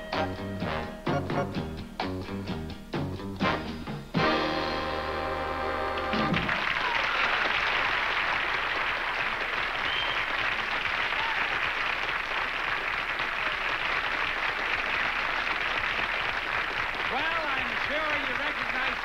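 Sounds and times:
studio audience applauding: 0:05.9 - 0:19.0.

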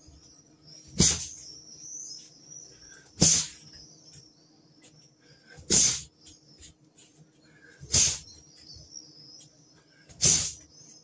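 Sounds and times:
rushing bursts of arm swings: 0:00.9 - 0:01.4, 0:03.2 - 0:03.7, 0:05.6 - 0:06.1, 0:07.8 - 0:08.3, 0:10.1 - 0:10.6.

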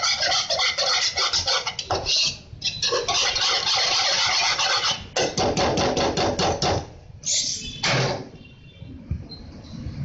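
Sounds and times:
whisk scraping metal pan: 0:00.0 - 0:05.2.

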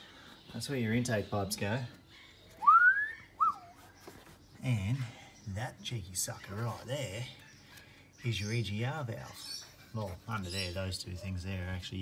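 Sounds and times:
person whistling: 0:02.6 - 0:03.7.

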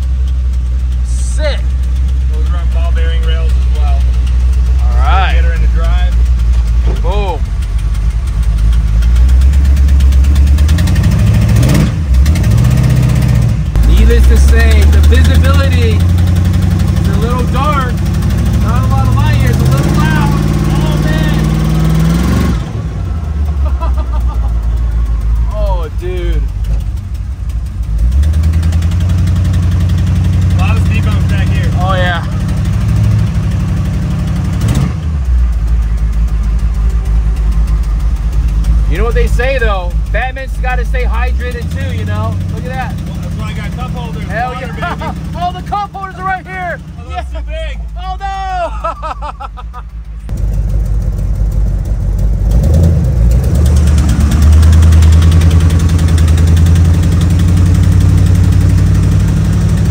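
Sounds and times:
car engine accelerating: 0:00.0 - 0:59.9.

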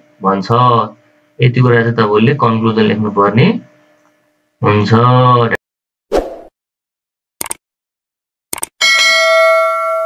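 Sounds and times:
mouse double click: 0:08.5 - 0:08.7
notification bell chime: 0:08.8 - 0:10.0.

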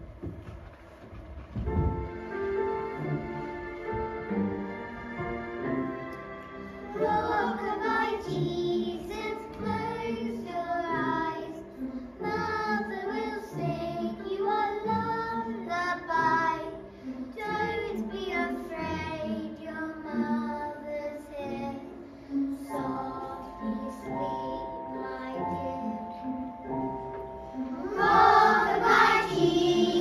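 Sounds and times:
musical accompaniment: 0:00.0 - 0:30.0
young children singing: 0:06.8 - 0:30.0.

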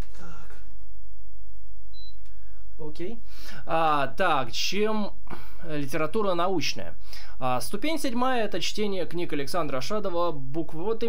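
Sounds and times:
steady low hum: 0:00.0 - 0:10.9
short high-pitched beep: 0:01.9 - 0:02.2
man speaking: 0:02.8 - 0:11.0.

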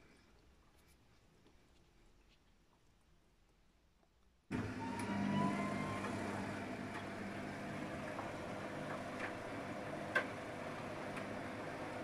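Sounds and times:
washing machine motor running: 0:04.5 - 0:12.0.

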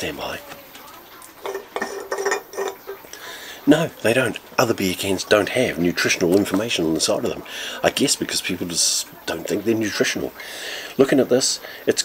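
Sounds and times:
beer cans clinking together: 0:00.0 - 0:07.4.

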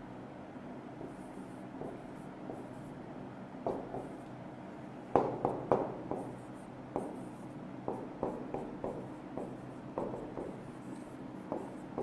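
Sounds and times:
low steady hum: 0:00.0 - 0:12.0
marker writing on whiteboard: 0:01.0 - 0:03.0, 0:03.6 - 0:04.4, 0:05.2 - 0:12.0.

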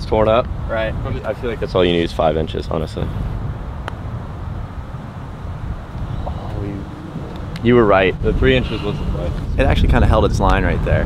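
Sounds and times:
wind rumbling on microphone: 0:00.0 - 0:11.0
faint voices: 0:06.0 - 0:09.6.

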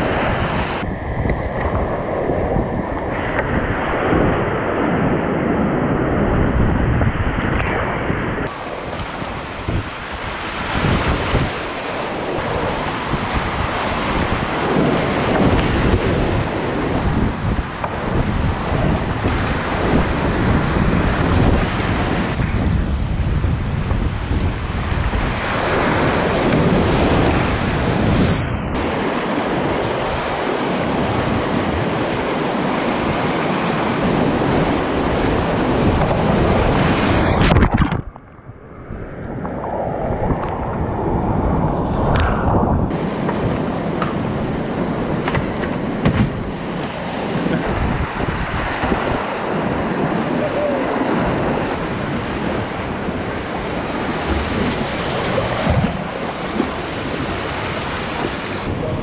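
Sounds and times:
wind buffeting microphone: 0:00.0 - 0:59.0
whitewater rapids rushing: 0:42.9 - 0:59.0.

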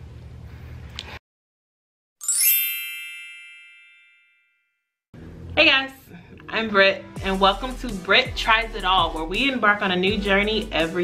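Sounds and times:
bright chime: 0:02.2 - 0:04.7.

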